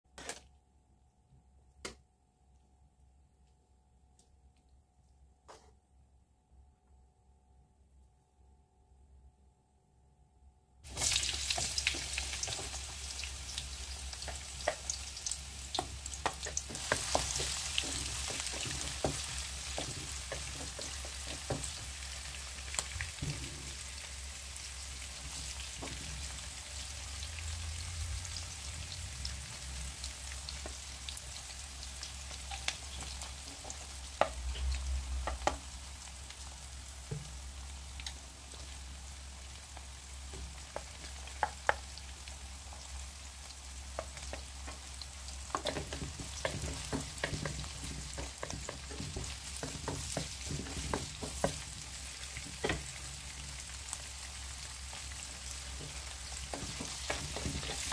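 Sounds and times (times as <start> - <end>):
onions sizzling in hot oil: 10.9 - 57.9.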